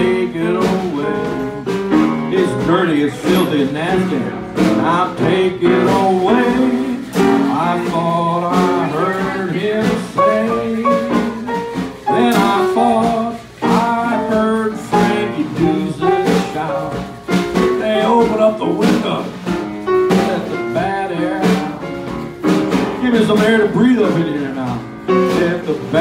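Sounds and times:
man singing into a microphone: 0:00.0 - 0:26.0
snare drum: 0:00.0 - 0:26.0
upright piano: 0:00.0 - 0:26.0.

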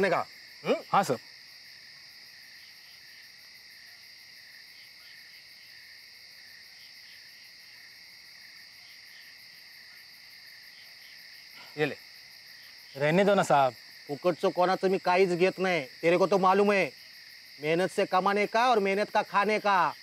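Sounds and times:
crickets chirping: 0:00.0 - 0:20.0.

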